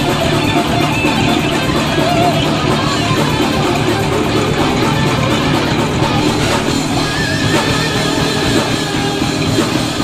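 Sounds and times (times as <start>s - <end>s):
metal band playing live: 0.0s - 10.0s
rapid drumming: 0.0s - 10.0s.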